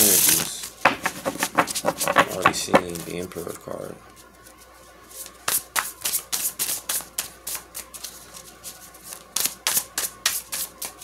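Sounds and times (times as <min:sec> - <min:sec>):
cards being shuffled: 0:00.0 - 0:03.2, 0:04.1 - 0:11.0.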